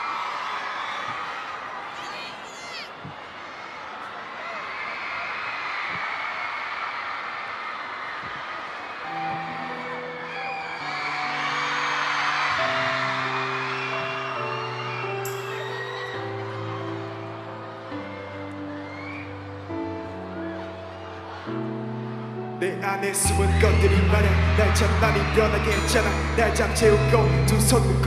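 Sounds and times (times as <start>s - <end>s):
crowd screaming and cheering: 0.0s - 28.0s
slow held instrumental chords: 9.1s - 28.0s.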